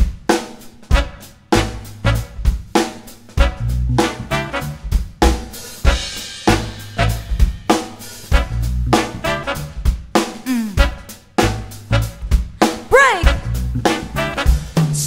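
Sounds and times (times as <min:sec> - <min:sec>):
drum kit: 0:00.0 - 0:15.0
bass line: 0:01.0 - 0:02.6, 0:03.4 - 0:07.6, 0:08.3 - 0:09.8, 0:10.5 - 0:15.0.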